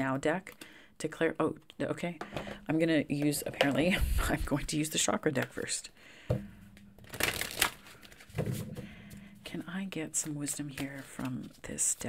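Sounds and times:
cards shuffling: 0:07.0 - 0:08.7, 0:10.1 - 0:12.0.

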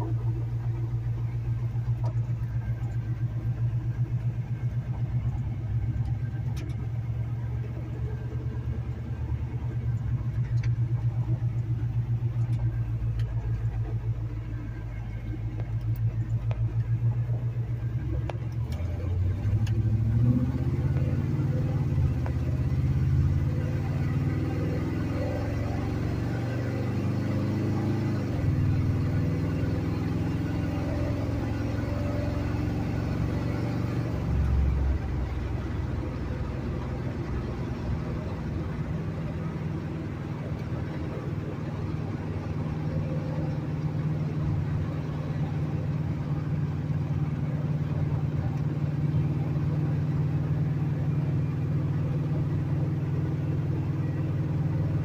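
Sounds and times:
pickup engine accelerating: 0:00.0 - 0:55.0.

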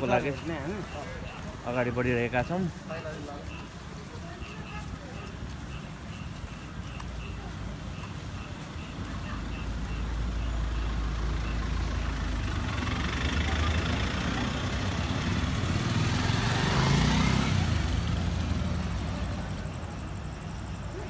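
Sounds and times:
truck driving past: 0:10.9 - 0:20.3.

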